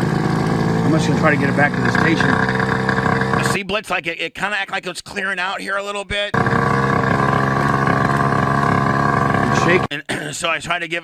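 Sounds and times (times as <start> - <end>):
moped engine bogging: 0.0 - 3.6, 6.4 - 9.9.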